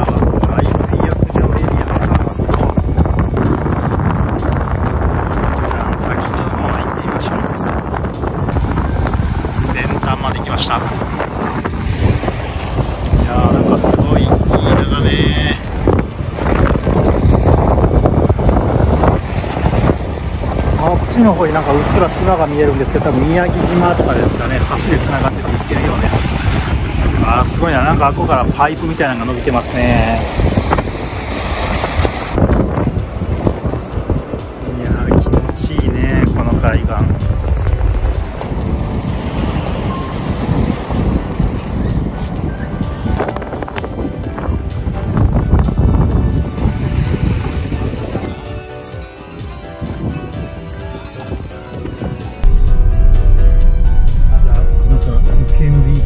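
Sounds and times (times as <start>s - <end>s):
wind buffeting microphone: 0.0s - 48.6s, 49.6s - 56.0s
background music: 0.0s - 56.0s
waves washing against seawall: 0.2s - 48.3s.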